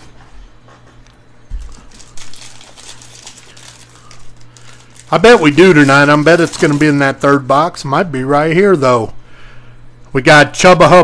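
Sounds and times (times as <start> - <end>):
low electrical hum: 0.0 - 11.0
foil wrapper crinkling: 1.5 - 7.8.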